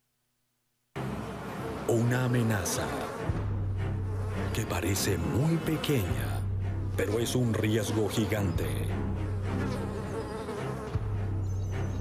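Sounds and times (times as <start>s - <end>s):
fly buzzing: 1.0s - 12.0s.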